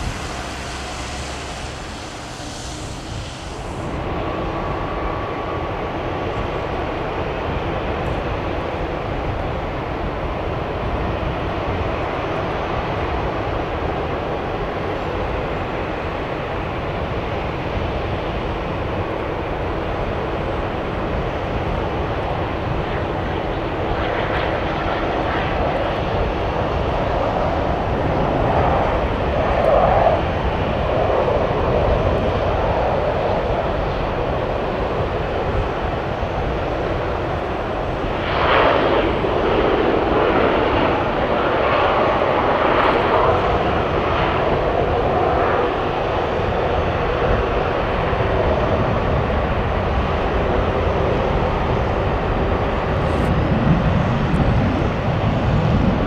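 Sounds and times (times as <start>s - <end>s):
jet engines rumbling: 0.0s - 56.0s.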